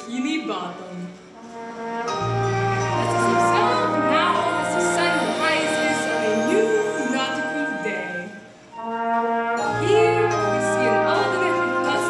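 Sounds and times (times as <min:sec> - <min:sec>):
brass chords: 0:01.2 - 0:12.0.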